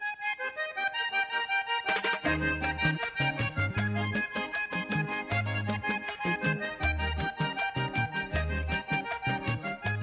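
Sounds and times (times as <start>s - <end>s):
accordion melody: 0.0s - 10.0s.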